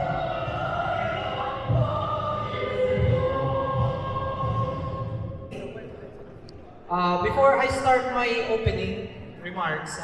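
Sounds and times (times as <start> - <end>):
choir singing anthem with accompaniment: 0.0 - 5.9.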